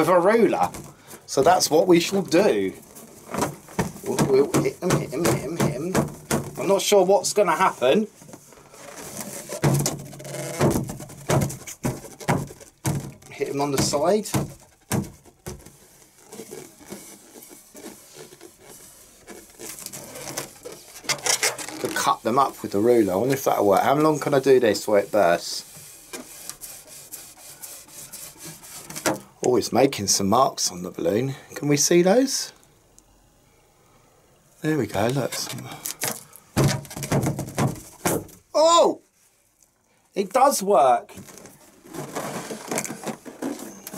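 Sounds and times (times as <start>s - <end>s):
ruler smacking a balloon: 3.3s - 6.6s, 9.6s - 15.7s, 36.0s - 38.4s
plastic ruler scraping a balloon: 8.6s - 23.5s, 24.3s - 29.2s.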